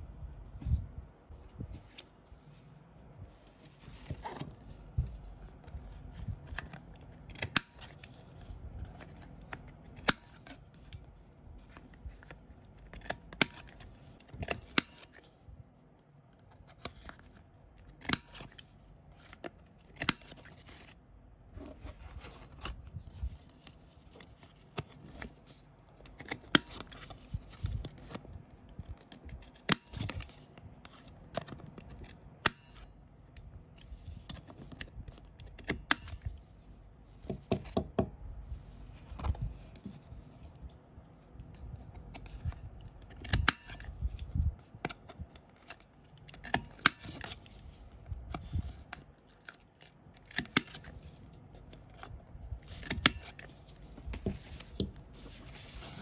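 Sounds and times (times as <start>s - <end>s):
paper rustling: 1.4s - 9.6s, 51.9s - 56.0s
cards rustling: 1.5s - 15.4s, 21.6s - 28.3s, 41.5s - 56.0s.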